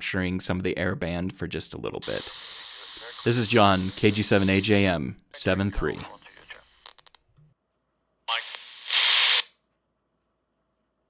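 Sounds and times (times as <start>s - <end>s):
radio voice: 2.0s - 6.9s, 8.3s - 9.4s
loud radio static: 2.0s - 7.2s, 8.3s - 9.5s.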